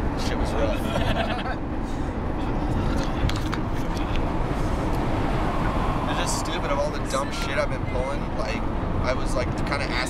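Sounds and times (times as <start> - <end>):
engine and road noise: 0.0 - 10.0.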